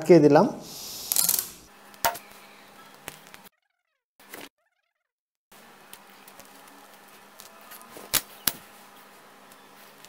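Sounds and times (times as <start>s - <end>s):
adhesive tape crackling: 5.9s - 8.7s.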